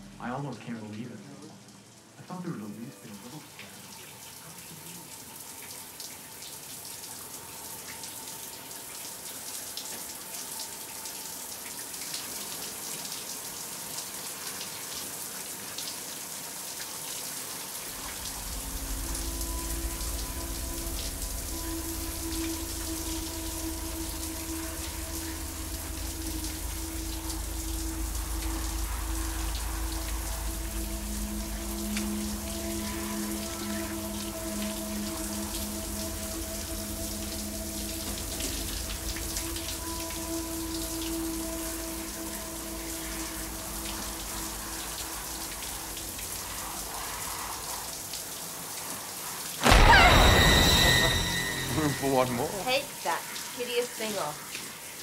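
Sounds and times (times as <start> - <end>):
low droning music: 0.0 - 14.6, 17.6 - 48.6, 49.6 - 53.7
shower water spraying: 11.2 - 55.0.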